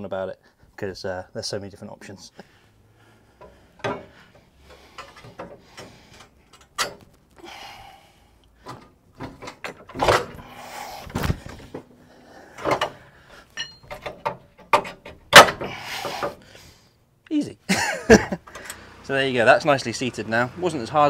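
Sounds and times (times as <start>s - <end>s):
metallic clanks of coil spring: 8.7s - 16.3s.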